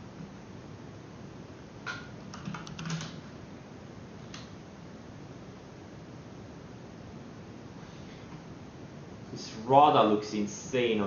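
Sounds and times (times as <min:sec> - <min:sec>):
computer keyboard typing clicks: 0:02.3 - 0:03.2
steady hiss: 0:03.2 - 0:11.0.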